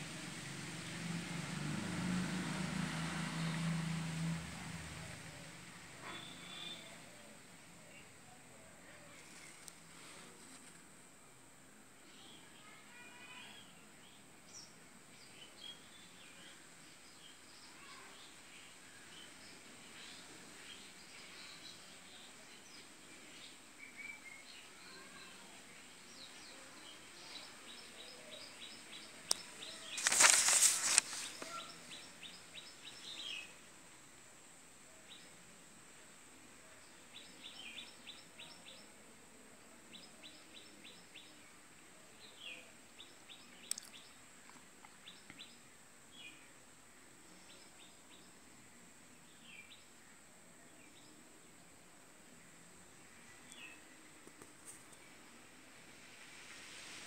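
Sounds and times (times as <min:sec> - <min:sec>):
small birds chirping: 0:12.0 - 0:33.6, 0:39.8 - 0:55.4.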